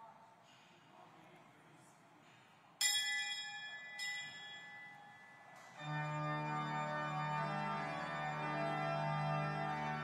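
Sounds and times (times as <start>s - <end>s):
high-pitched bell ringing: 2.8s - 7.4s.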